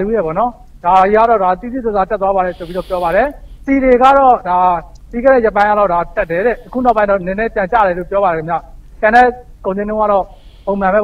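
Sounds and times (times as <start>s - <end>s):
man speaking: 0.0s - 11.0s
short hiss: 2.4s - 3.8s, 6.2s - 7.0s, 10.2s - 10.8s.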